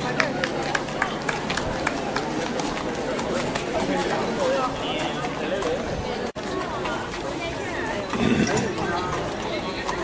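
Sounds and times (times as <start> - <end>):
horse hooves clip-clopping on road: 0.0 - 10.0
onlookers talking: 0.0 - 10.0.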